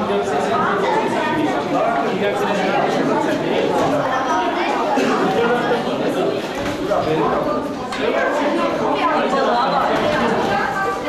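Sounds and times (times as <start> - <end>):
babble of voices: 0.0 - 11.0.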